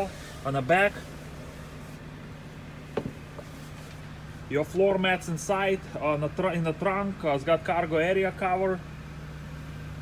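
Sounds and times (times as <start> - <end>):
car climate control hum: 0.0 - 10.0.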